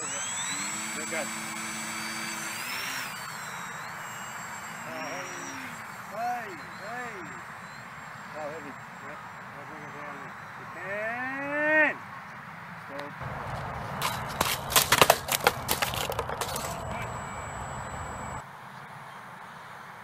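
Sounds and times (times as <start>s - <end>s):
sharp cracks and clatters: 13.2s - 18.4s.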